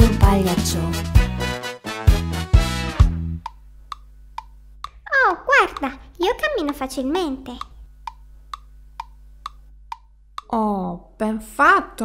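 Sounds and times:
cartoon wood-block footsteps: 0:03.4 - 0:10.5.

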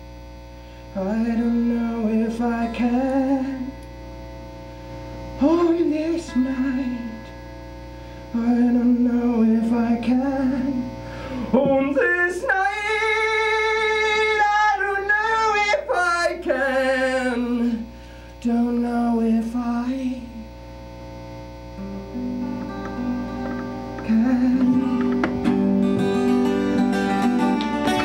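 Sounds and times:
electrical mains hum: 0:00.0 - 0:28.0
man singing wordless phrases: 0:01.0 - 0:03.7, 0:05.4 - 0:07.2, 0:08.3 - 0:20.5, 0:24.0 - 0:25.1
acoustic guitar playing: 0:01.2 - 0:17.8, 0:21.7 - 0:28.0.

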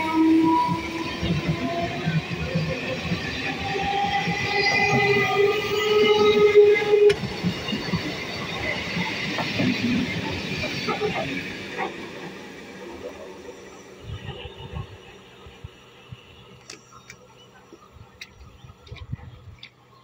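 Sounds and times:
train wheels rumbling on rail: 0:00.0 - 0:19.9.

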